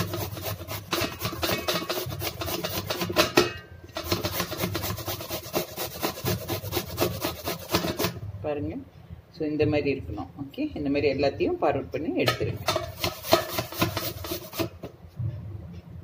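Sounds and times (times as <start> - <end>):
vegetable grated on metal grater: 0.0 - 8.2, 12.3 - 14.9.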